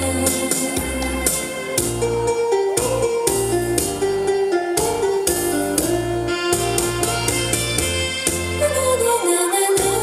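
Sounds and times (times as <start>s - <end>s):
instrumental song backing track: 0.0s - 10.0s.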